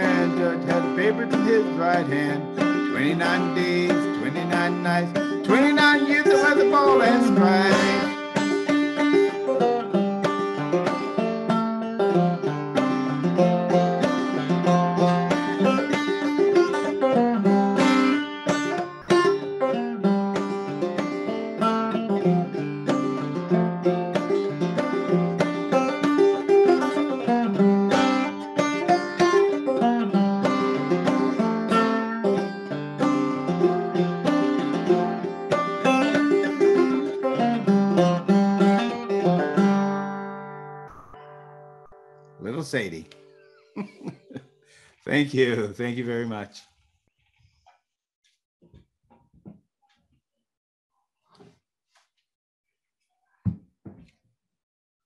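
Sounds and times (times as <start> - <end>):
banjo playing: 0.0 - 44.3.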